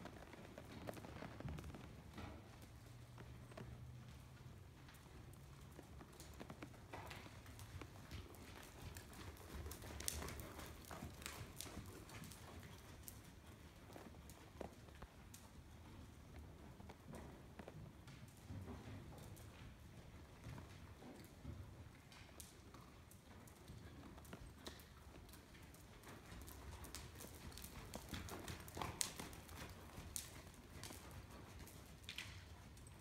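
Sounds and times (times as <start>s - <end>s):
hoofbeats on soft dirt: 0.0s - 33.0s.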